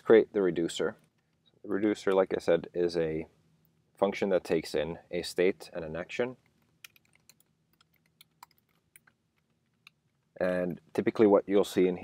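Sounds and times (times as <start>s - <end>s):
computer keyboard typing: 6.8s - 9.2s.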